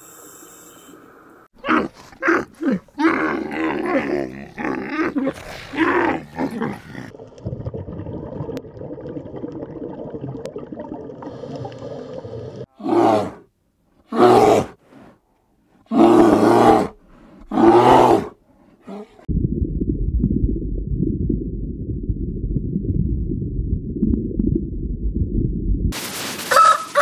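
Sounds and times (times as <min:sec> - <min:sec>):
low rough rumbling: 0:19.3 - 0:26.0.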